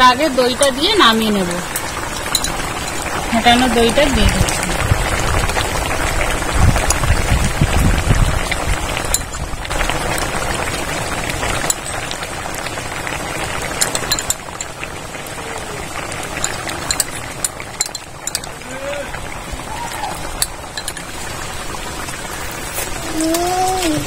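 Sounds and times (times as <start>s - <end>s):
curry bubbling and hissing: 0.0s - 24.0s.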